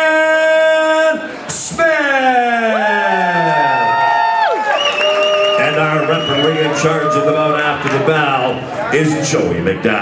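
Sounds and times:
crowd cheering and whooping: 0:02.4 - 0:08.2
announcer calling over loudspeaker: 0:05.5 - 0:09.2.

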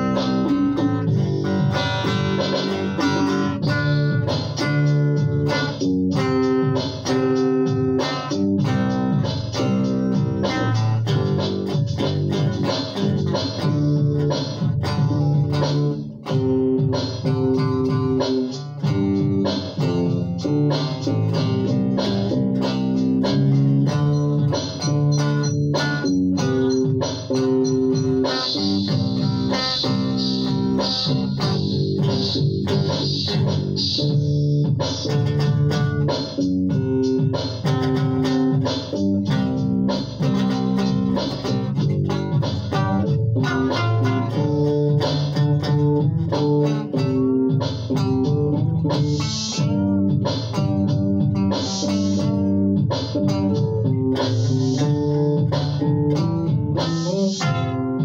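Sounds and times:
electric guitar rock playing: 0:00.0 - 0:58.0.

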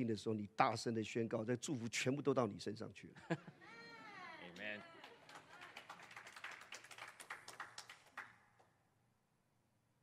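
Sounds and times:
faint scattered applause: 0:04.4 - 0:08.7.

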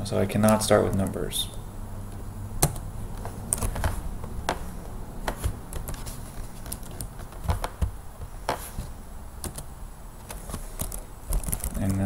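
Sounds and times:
low steady hum: 0:00.0 - 0:12.0
computer keyboard keys clicking: 0:09.4 - 0:12.0.

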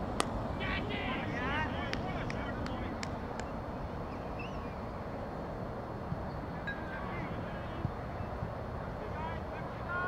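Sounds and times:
players shouting: 0:09.0 - 0:10.0.

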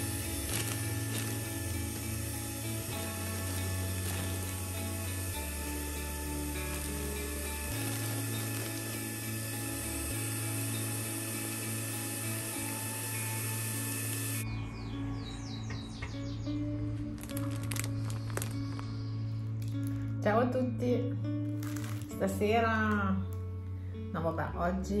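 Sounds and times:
handheld vacuum cleaner whirring: 0:00.0 - 0:14.4
background music: 0:00.0 - 0:25.0.

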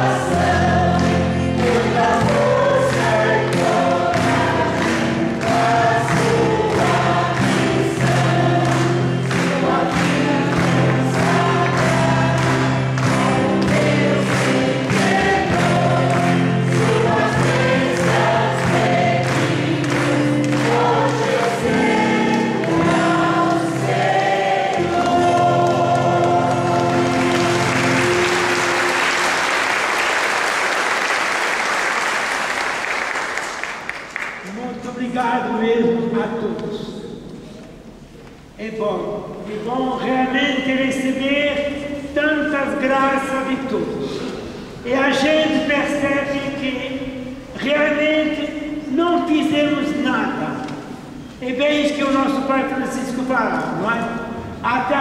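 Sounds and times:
choir singing religious song: 0:00.0 - 0:30.7
applause: 0:01.0 - 0:24.0, 0:25.0 - 0:34.6.

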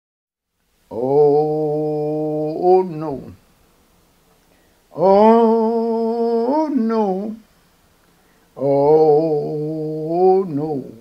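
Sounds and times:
man singing a held note: 0:00.9 - 0:03.4, 0:04.9 - 0:07.4, 0:08.6 - 0:11.0.

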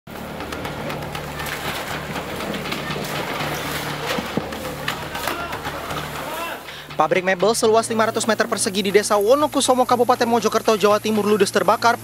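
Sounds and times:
fire crackling and popping: 0:00.1 - 0:11.8
steady rushing noise: 0:00.1 - 0:12.0.

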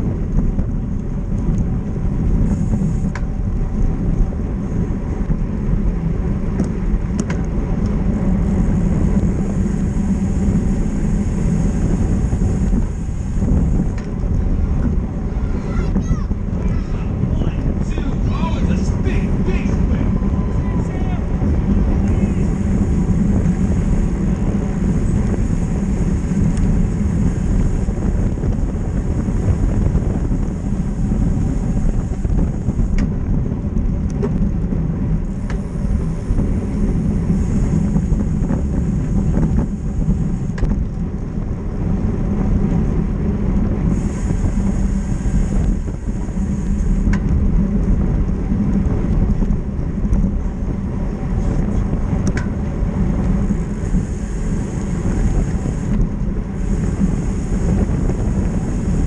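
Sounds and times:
road rumble: 0:00.0 - 0:59.0
wind rush: 0:00.0 - 0:59.0
voices: 0:15.3 - 0:22.6.

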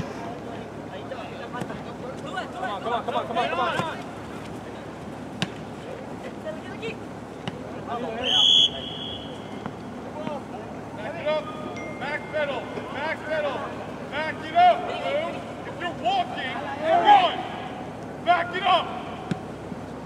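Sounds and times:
players shouting: 0:01.5 - 0:05.6, 0:06.3 - 0:11.4, 0:12.0 - 0:19.6
referee's whistle blast: 0:08.2 - 0:09.6.

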